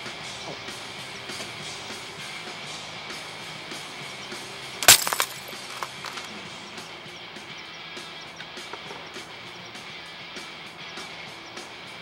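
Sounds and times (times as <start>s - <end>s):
background music: 0.0s - 12.0s
small clatters: 4.8s - 6.3s.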